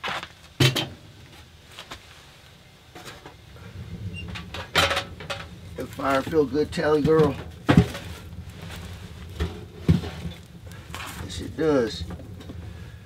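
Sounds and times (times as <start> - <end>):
rustling: 1.3 - 13.0
metal stove clanks: 4.1 - 8.2.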